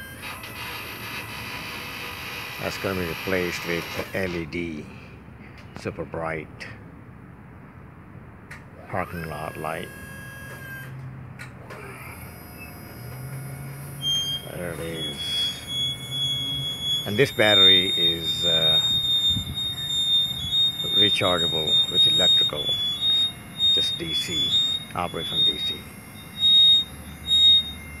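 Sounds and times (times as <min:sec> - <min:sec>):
hydraulic pump motor humming: 0:00.0 - 0:04.6, 0:08.8 - 0:28.0
high-pitched warning beeps: 0:02.5 - 0:05.0, 0:08.9 - 0:11.0, 0:12.1 - 0:28.0.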